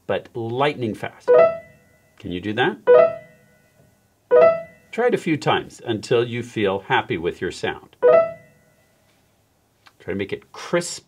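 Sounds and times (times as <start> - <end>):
piano grace-note flourish: 1.3 - 2.0, 2.9 - 3.7.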